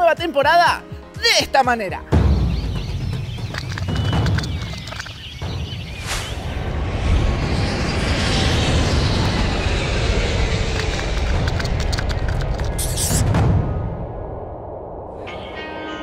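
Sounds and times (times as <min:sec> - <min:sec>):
deep rumble: 0:02.2 - 0:15.3
jet engine roar: 0:04.9 - 0:15.6
short whoosh: 0:05.9 - 0:10.8.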